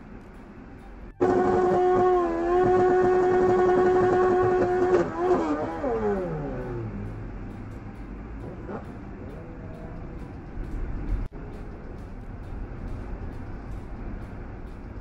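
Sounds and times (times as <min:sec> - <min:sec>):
motorcycle engine revving: 0:01.2 - 0:07.7, 0:08.4 - 0:10.3.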